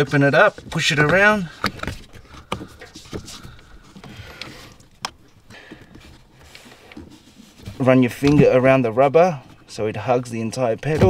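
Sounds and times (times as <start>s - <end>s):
pedal cover clicking and rubbing: 0.0s - 9.8s.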